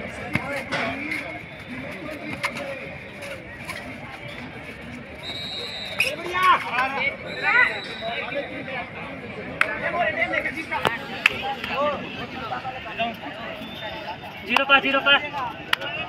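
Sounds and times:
crowd babble: 0.0s - 16.0s.

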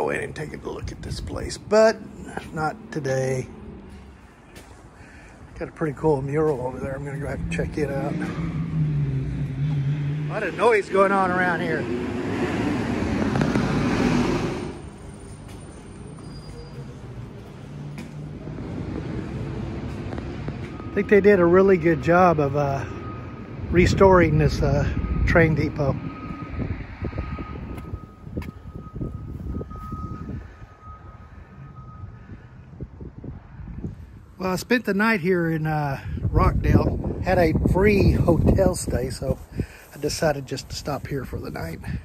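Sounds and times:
loud road vehicle noise: 0.0s - 42.0s.

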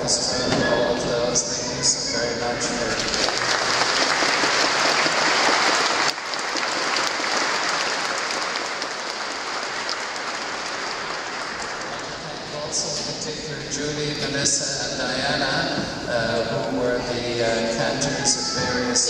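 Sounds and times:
congregation applauding: 2.1s - 13.1s.

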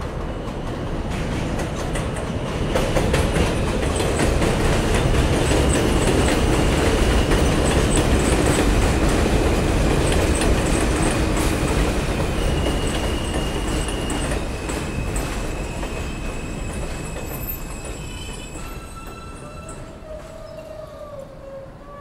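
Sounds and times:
subway train rumbling past: 0.0s - 22.0s.

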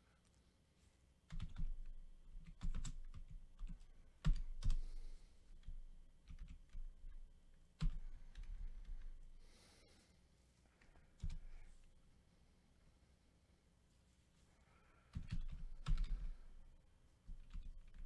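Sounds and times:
typing on computer keyboard: 1.3s - 4.9s, 5.6s - 7.2s, 7.8s - 9.2s, 15.1s - 16.4s, 17.3s - 18.0s.

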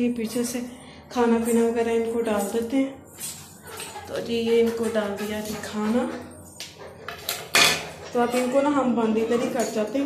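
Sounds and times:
food dish clattering: 3.6s - 8.6s.

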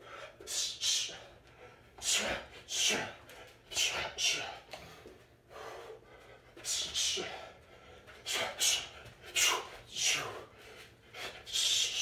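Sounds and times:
soft breathing: 0.0s - 12.0s.

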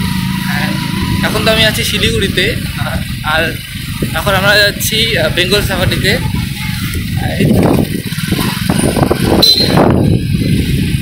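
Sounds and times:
motorbike engine: 0.0s - 11.0s
road noise: 0.0s - 11.0s
wind buffeting a microphone: 0.8s - 11.0s.

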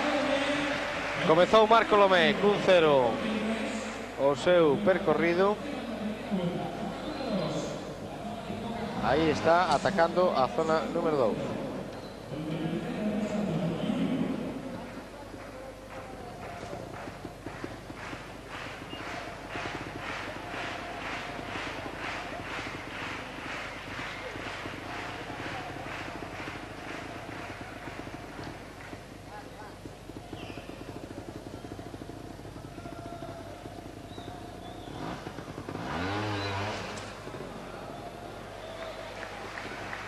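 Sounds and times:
audience clapping in rhythm: 0.0s - 3.1s, 14.8s - 32.4s, 33.6s - 37.3s, 38.3s - 40.0s
crowd background: 0.0s - 40.0s
motorcycle engine revving: 16.0s - 40.0s.

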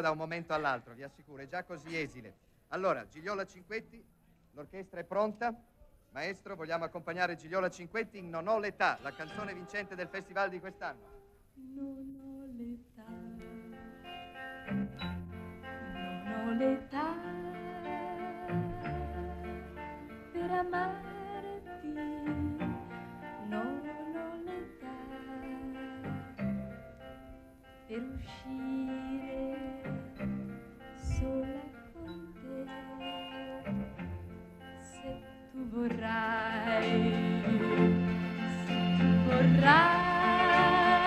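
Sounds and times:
woman singing a slow ballad: 11.6s - 14.1s, 15.8s - 26.4s, 27.9s - 34.1s, 34.8s - 41.0s
orchestral accompaniment: 36.5s - 41.0s.

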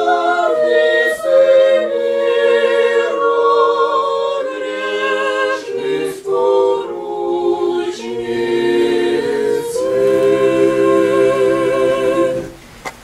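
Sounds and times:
choir singing church chant: 0.0s - 12.6s.

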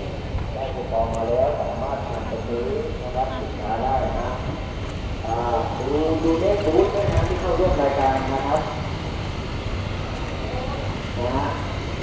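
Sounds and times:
air conditioning units humming: 0.0s - 12.0s.

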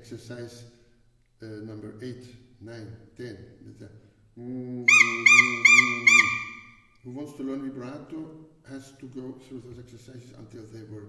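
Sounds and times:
high whistle-like mouth tone: 4.9s - 6.8s.

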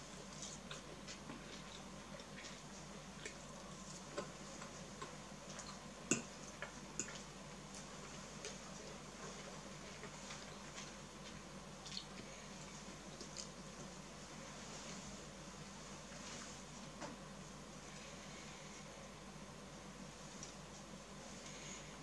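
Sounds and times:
low room hum: 0.0s - 22.0s.

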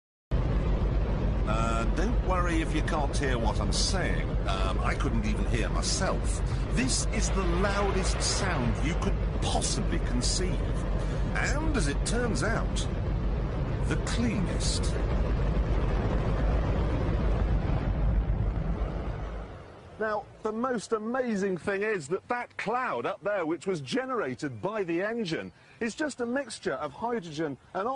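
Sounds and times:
rocket engine roaring: 0.3s - 20.5s.

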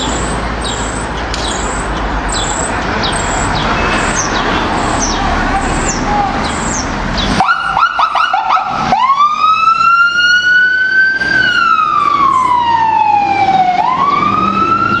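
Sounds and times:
electronic siren chirps and wail: 0.8s - 15.0s.

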